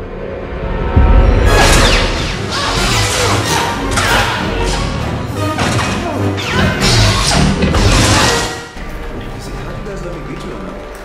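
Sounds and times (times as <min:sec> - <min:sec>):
orchestral film score: 0:00.0 - 0:11.0
lightsaber clashes and swings: 0:01.5 - 0:08.6.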